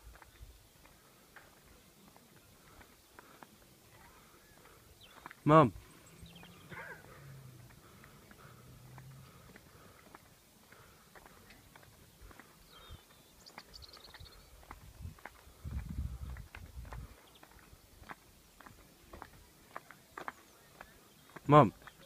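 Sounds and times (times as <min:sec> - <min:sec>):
faint footsteps: 0:00.0 - 0:22.0.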